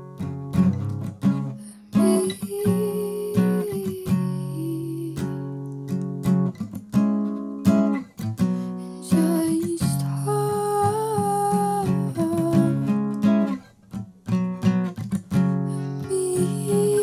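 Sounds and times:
acoustic guitar strumming: 0:00.0 - 0:17.0
woman singing long note: 0:01.8 - 0:05.3, 0:16.0 - 0:17.0.

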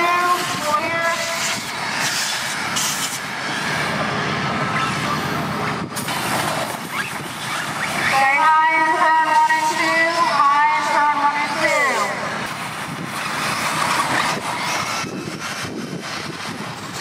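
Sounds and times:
small engines buzzing at high revs: 0:00.0 - 0:08.6, 0:09.4 - 0:17.0
noisy wash: 0:00.0 - 0:17.0.

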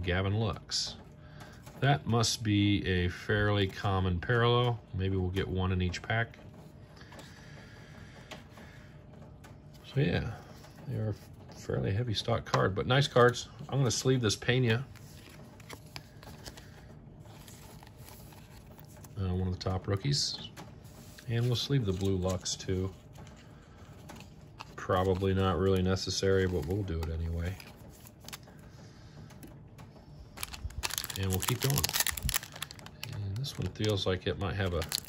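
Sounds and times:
trading cards clicking and rustling: 0:07.0 - 0:35.0
foil card pack crinkling: 0:12.9 - 0:19.7, 0:21.0 - 0:28.6, 0:30.4 - 0:35.0.

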